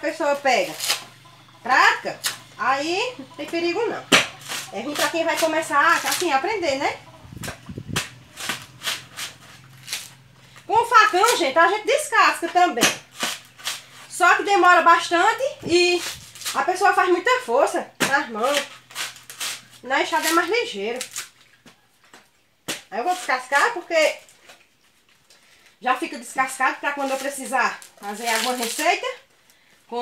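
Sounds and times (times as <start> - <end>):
coconut husk ripping: 0.1 - 1.2, 2.2 - 2.5, 4.0 - 6.6, 7.4 - 11.6, 12.8 - 14.2, 15.5 - 17.4, 18.0 - 21.6, 26.3 - 29.3.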